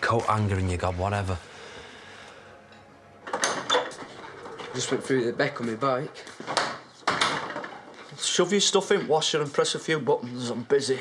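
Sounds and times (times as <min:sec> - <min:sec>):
clatter of knocks and rattles: 0:06.4 - 0:08.1.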